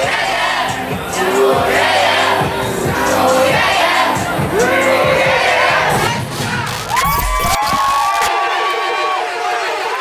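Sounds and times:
crowd cheering and screaming: 4.5s - 10.0s.

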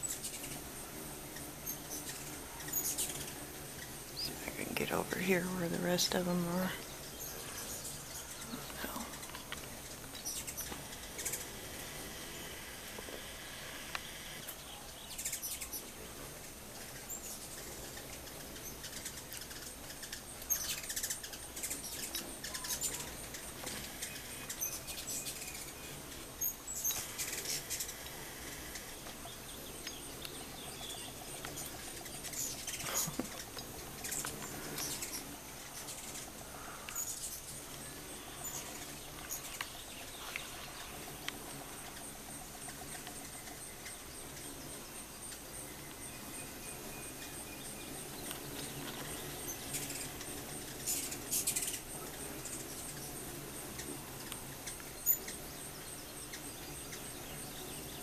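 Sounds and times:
hummingbirds chirping: 0.0s - 58.0s.

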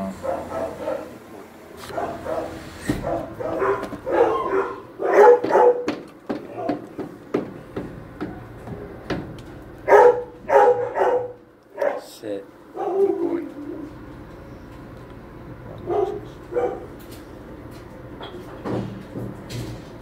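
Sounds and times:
dogs barking: 0.0s - 7.2s, 9.8s - 14.0s, 15.6s - 17.2s.

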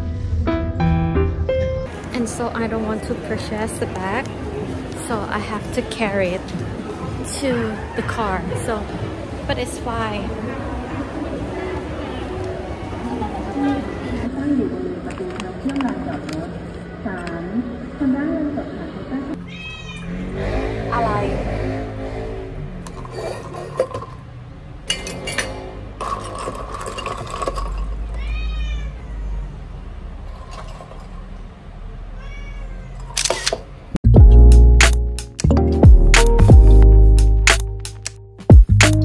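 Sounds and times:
cat meowing: 19.4s - 20.2s, 28.0s - 29.6s, 32.1s - 33.2s.

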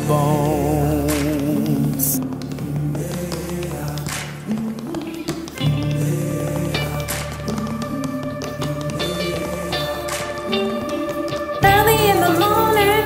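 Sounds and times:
tap shoes on wooden floor: 0.0s - 12.6s
instrumental music with chords and bass: 0.0s - 13.0s.

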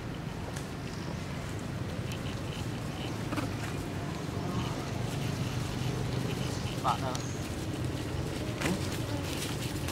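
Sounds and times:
faint ticks and rustles: 0.0s - 9.9s.

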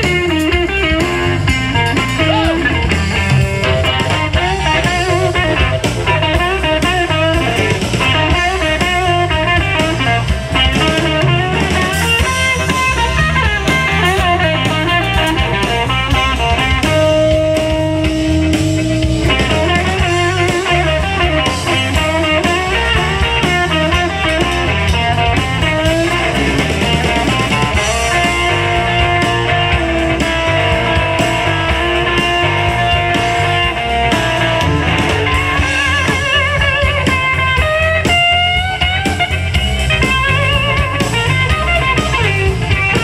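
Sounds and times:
drum kit: 0.0s - 43.0s
electric guitar: 0.0s - 43.0s.

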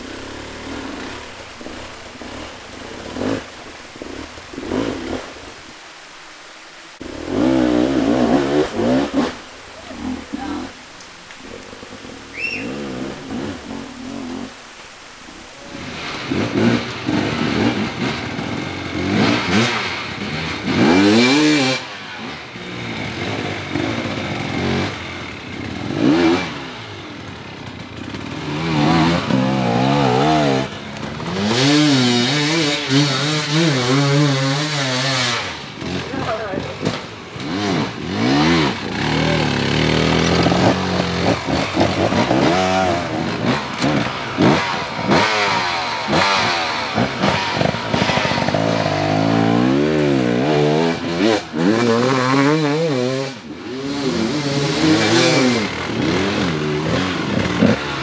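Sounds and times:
dirt bike engine revving: 0.0s - 5.6s, 7.0s - 10.8s, 11.4s - 14.7s, 15.3s - 58.0s.

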